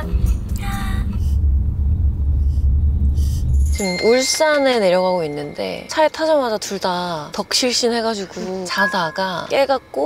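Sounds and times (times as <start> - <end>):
road rumble inside van: 0.0 - 8.8.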